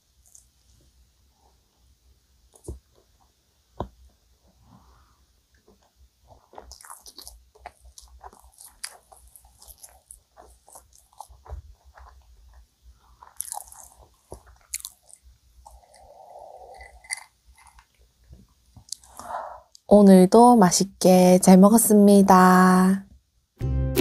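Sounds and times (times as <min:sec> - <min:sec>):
soft steady hiss: 0:00.0 - 0:23.6
mouth chewing soft food: 0:02.5 - 0:19.9.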